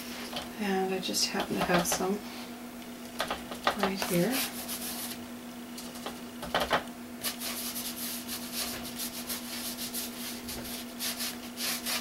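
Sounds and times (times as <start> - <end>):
steady low hum: 0.0 - 12.0
paintbrush strokes on paper: 7.4 - 12.0.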